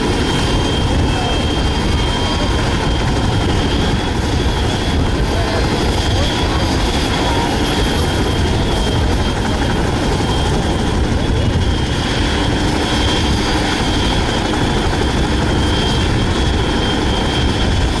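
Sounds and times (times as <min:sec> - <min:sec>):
helicopter engines whining: 0:00.0 - 0:18.0
helicopter rotors turning: 0:00.0 - 0:18.0.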